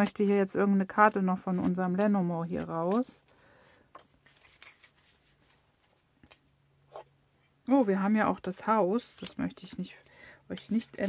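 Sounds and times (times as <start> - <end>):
cards rustling: 0.0 - 6.6.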